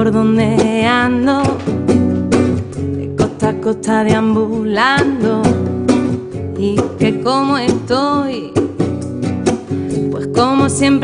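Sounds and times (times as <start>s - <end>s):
woman singing wordlessly: 0.0s - 1.8s, 3.0s - 8.8s, 10.1s - 11.0s
bongos: 0.0s - 11.0s
strummed classical guitar: 0.0s - 11.0s.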